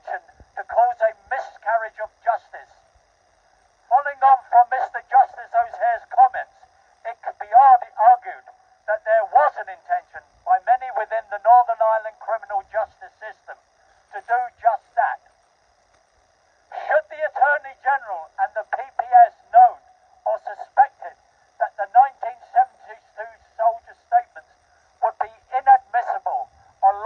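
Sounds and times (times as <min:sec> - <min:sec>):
man speaking through megaphone: 0:00.0 - 0:02.8, 0:03.9 - 0:15.3, 0:16.7 - 0:27.0
faint megaphone hum: 0:00.0 - 0:27.0.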